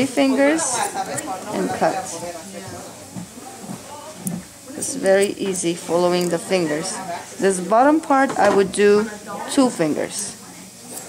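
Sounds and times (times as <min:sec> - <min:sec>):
quiet talking: 0:00.0 - 0:11.0.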